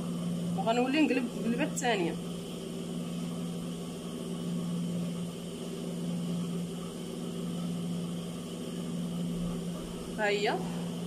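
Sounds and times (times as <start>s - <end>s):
low electric hum: 0.0s - 11.0s.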